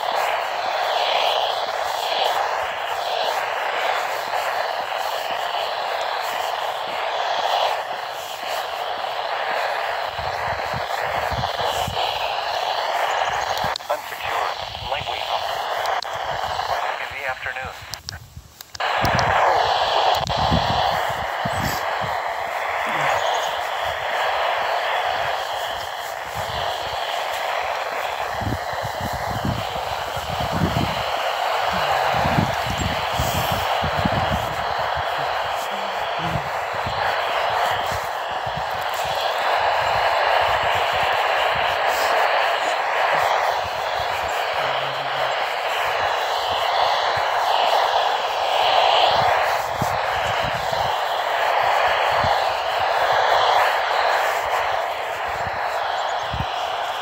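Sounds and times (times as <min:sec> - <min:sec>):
radio static hiss: 0:00.0 - 0:57.0
faint voice on radio: 0:10.3 - 0:18.2, 0:18.8 - 0:22.0, 0:22.6 - 0:25.4, 0:26.5 - 0:50.8.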